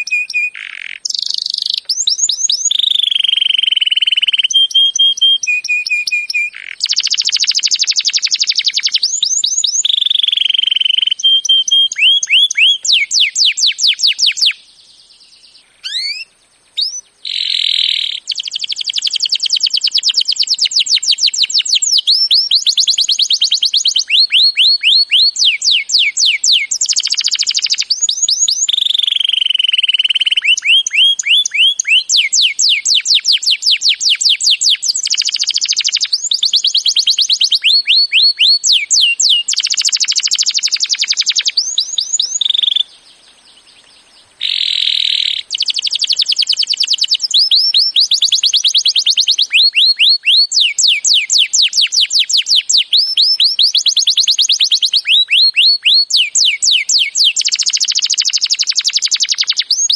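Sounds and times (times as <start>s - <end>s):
canary singing trills: 0.0s - 59.9s.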